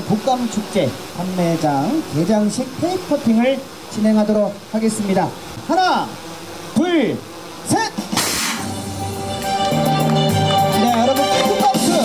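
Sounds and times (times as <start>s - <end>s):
confetti cannons firing: 8.1s - 9.1s
celebratory fanfare music: 8.6s - 12.0s.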